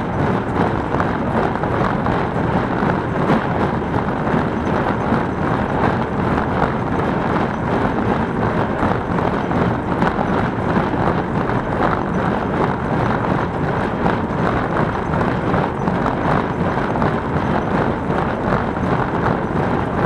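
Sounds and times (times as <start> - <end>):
hay baler running: 0.0 - 20.0.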